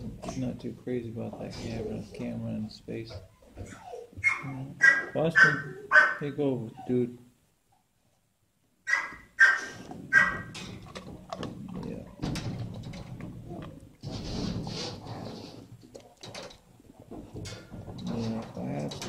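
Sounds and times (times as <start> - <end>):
dogs barking: 3.6 - 6.3, 8.9 - 10.6
dog sniffing and snuffling: 14.0 - 15.8.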